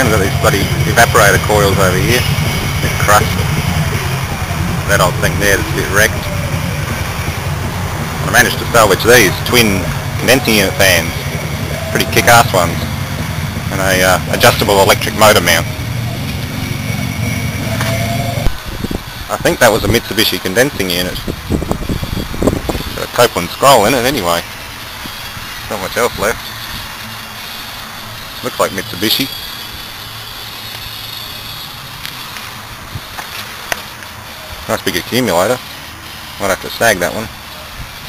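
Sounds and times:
engine rumble: 0:00.0 - 0:38.0
faint thin whine: 0:00.0 - 0:38.0
outdoor background noise: 0:00.0 - 0:38.0
steady low hum: 0:00.0 - 0:38.0.

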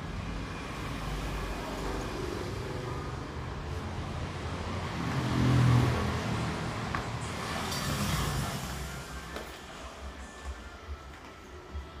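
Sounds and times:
road traffic noise: 0:00.0 - 0:12.0
vehicle passing: 0:00.2 - 0:09.6.

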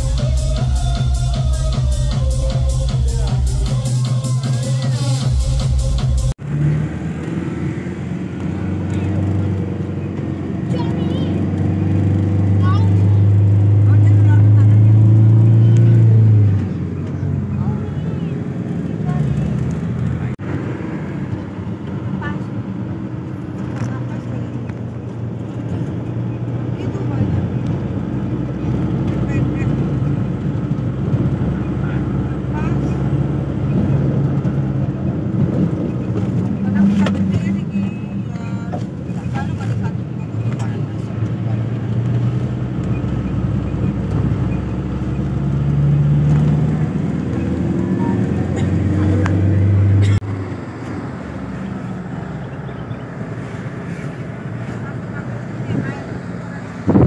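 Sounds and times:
vehicle engine and road noise: 0:00.0 - 0:57.0.

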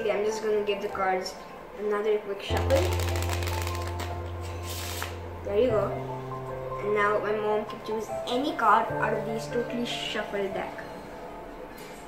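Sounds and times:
playing cards riffle shuffled: 0:02.6 - 0:05.2.

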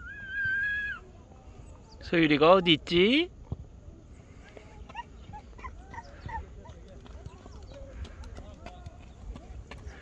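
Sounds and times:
distant voices calling and chattering: 0:00.0 - 0:10.0.

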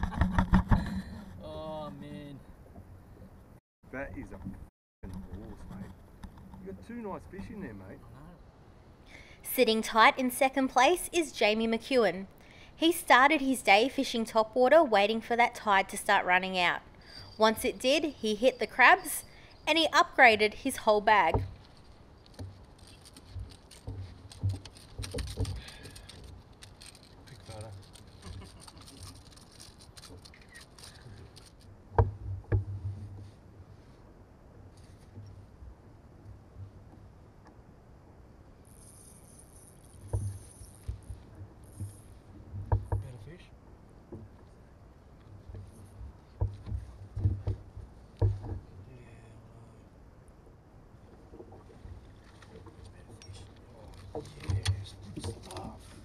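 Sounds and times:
low steady hum: 0:00.8 - 0:56.0
faint low rumble: 0:21.1 - 0:56.0
fishing gear clicks and knocks: 0:21.4 - 0:32.7, 0:51.9 - 0:56.0.

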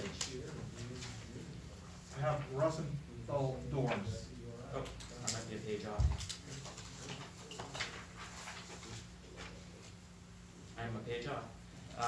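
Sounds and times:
paper rustling: 0:05.0 - 0:10.0.

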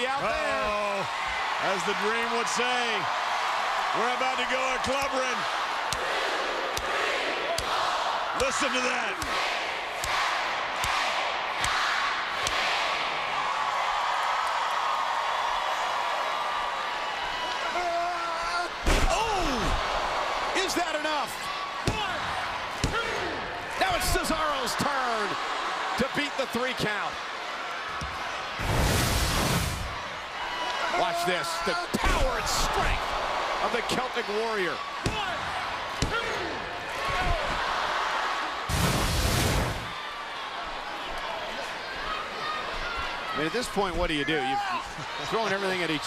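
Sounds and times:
arena crowd counting: 0:00.0 - 0:28.7, 0:29.6 - 0:46.0
crowd hum: 0:27.6 - 0:44.1.

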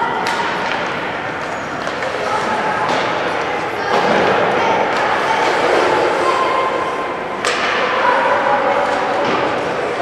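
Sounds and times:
crowd voices: 0:00.0 - 0:10.0
ice skating noise: 0:00.0 - 0:10.0.

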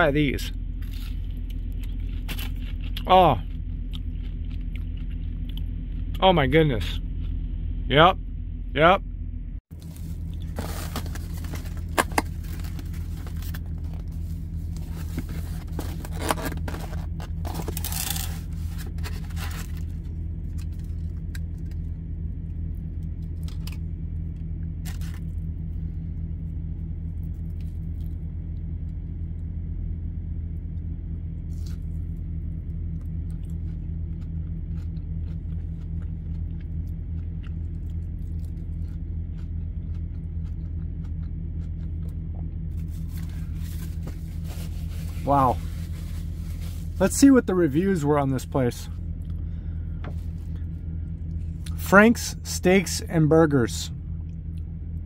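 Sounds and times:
steady low hum: 0:00.0 - 0:55.0
food packaging crinkling: 0:09.8 - 0:21.7.

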